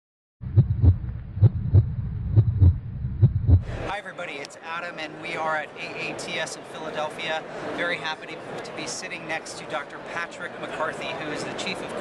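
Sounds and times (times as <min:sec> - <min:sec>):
heartbeat: 0:00.4 - 0:03.8
low hum: 0:00.4 - 0:03.9.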